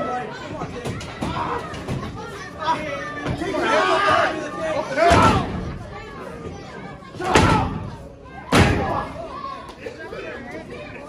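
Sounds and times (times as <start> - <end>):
loud impacts in a wrestling ring: 5.0 - 5.8, 7.2 - 7.9, 8.5 - 9.1.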